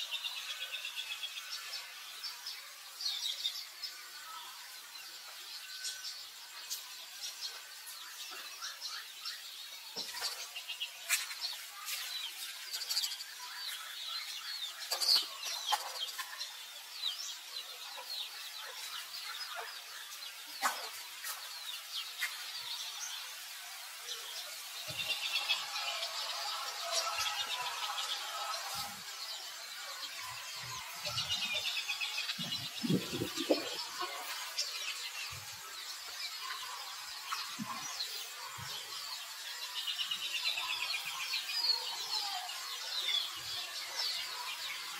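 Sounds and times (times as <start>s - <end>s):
birds chirping: 0.0s - 44.9s.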